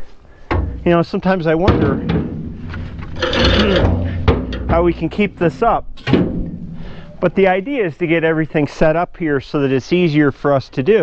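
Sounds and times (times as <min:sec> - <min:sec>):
object scraping across trailer deck: 0:02.1 - 0:07.3.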